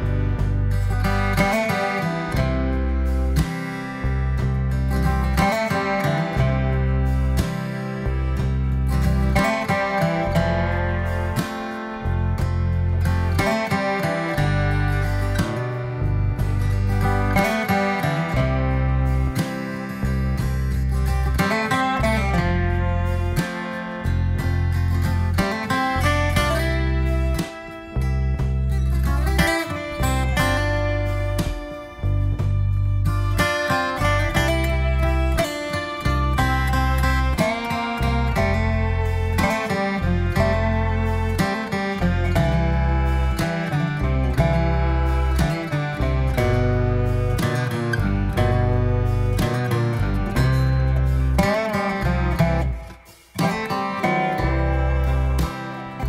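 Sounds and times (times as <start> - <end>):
guitar instrumental with bass beat: 0.0 - 56.0.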